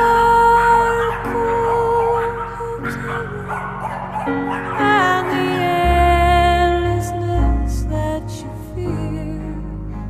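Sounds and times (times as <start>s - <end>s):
background music with held notes: 0.0s - 10.0s
dogs barking: 0.4s - 6.8s.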